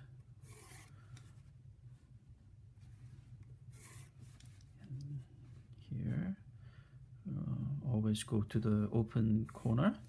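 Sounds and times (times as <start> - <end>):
low steady hum: 0.0 - 10.0
pencil scratching on paper: 0.4 - 0.9, 3.8 - 4.2.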